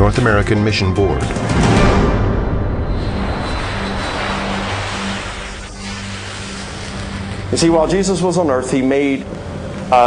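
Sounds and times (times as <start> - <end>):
jet airliner flying overhead: 2.8 - 8.7.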